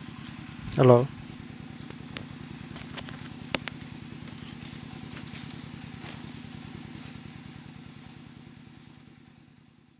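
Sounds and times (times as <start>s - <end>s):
small engine idling: 0.0s - 9.9s.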